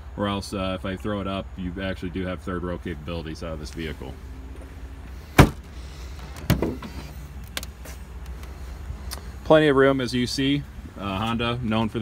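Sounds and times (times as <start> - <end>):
liftgate hardware clunks: 5.4 - 5.7, 6.3 - 7.1.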